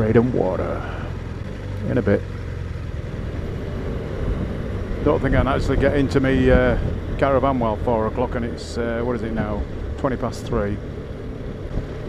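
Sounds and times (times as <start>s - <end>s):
motorcycle engine: 0.0s - 12.0s.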